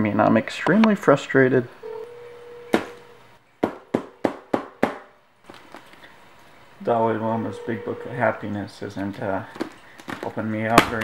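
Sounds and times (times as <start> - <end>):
faint steady tone: 1.7 - 3.4, 6.1 - 8.9
sharp knocks on hard surface: 3.6 - 5.1.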